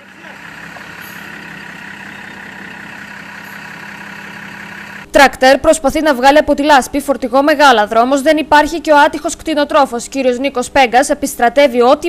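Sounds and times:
diesel engine running steadily: 0:00.0 - 0:05.1.

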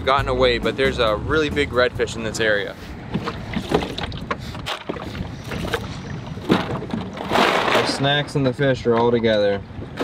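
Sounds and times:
low rumble: 0:00.0 - 0:08.2.

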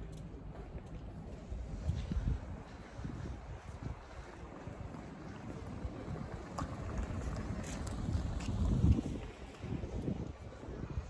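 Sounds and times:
street ambience: 0:00.0 - 0:11.0
wind buffeting microphone: 0:00.0 - 0:11.0.

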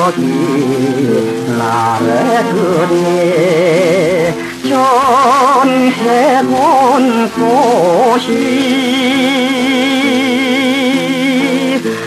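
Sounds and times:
popular song with guitar band: 0:00.0 - 0:12.0.

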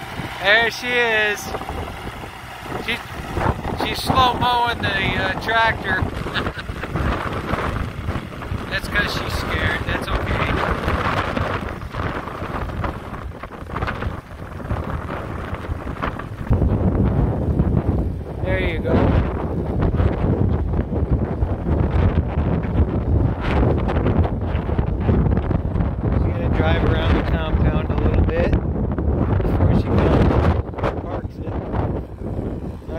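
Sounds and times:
tractor diesel engine running: 0:00.0 - 0:32.9
wind buffeting microphone: 0:00.0 - 0:32.9.

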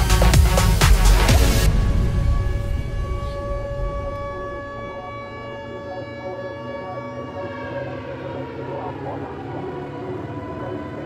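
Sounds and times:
siren-like tone: 0:01.7 - 0:11.0.

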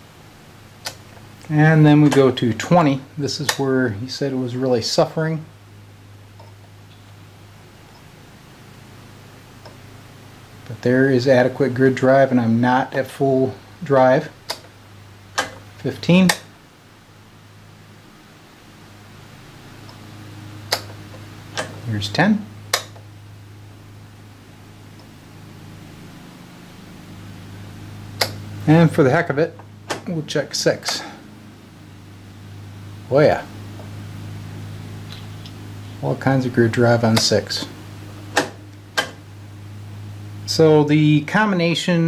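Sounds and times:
steady low hum: 0:00.0 - 0:42.0
rotary switch clicks: 0:00.8 - 0:01.1, 0:14.4 - 0:16.5, 0:20.6 - 0:21.9, 0:22.7 - 0:23.1, 0:28.2 - 0:28.5, 0:38.3 - 0:39.2.

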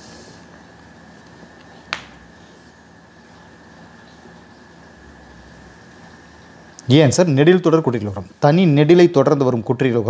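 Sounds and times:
faint background hiss and hum: 0:00.0 - 0:10.0.

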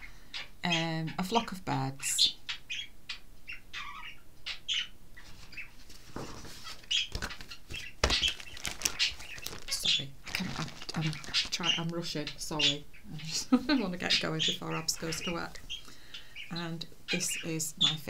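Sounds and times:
book pages rustling: 0:05.2 - 0:12.0.

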